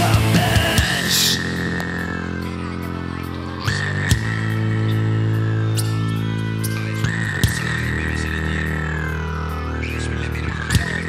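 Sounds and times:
synth and bass droning chord: 0.0 - 11.0.

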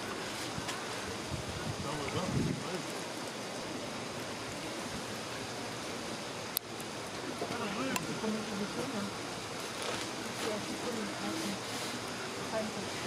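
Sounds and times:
background hiss: 0.0 - 13.0.

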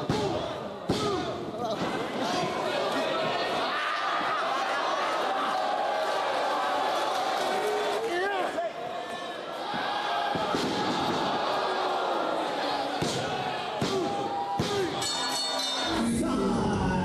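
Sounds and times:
crowd voices and shouts: 0.0 - 17.0.

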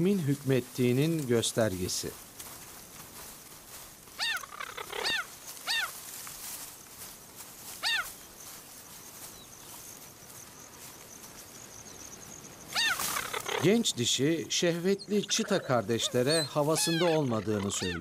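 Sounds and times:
cheetah chirping calls: 4.1 - 6.0, 7.8 - 8.4, 10.7 - 18.0.

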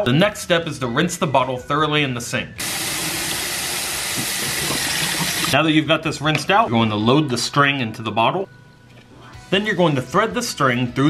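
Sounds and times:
faucet water rushing into bottle: 2.6 - 5.6.

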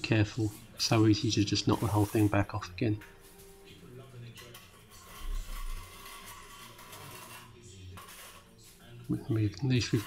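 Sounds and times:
trowel scraping render: 0.9 - 2.6, 4.4 - 8.6, 9.3 - 10.0.

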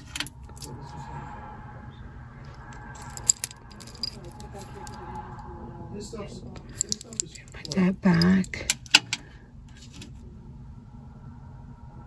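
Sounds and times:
metal jewelry clinking: 0.0 - 0.8, 3.0 - 5.0, 6.6 - 9.2
faint steady hum: 0.0 - 12.0.

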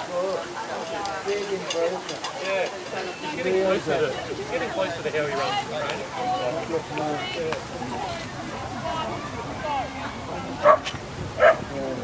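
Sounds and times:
background chatter: 0.0 - 12.0
dog barking: 10.6 - 11.7.

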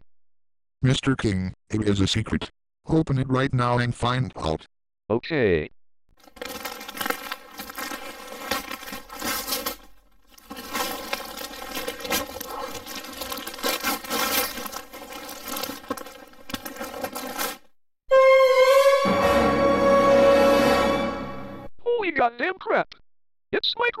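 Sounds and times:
wrapping paper tearing and crumpling: 6.2 - 17.7.

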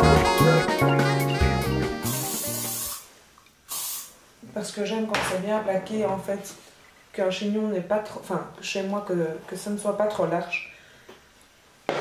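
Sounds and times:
jazz music: 0.0 - 3.0
spray hissing: 1.9 - 4.2.

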